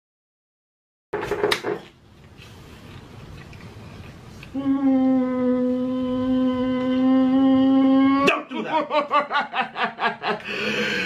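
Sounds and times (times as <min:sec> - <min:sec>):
person wailing and sobbing: 0:04.6 - 0:09.5.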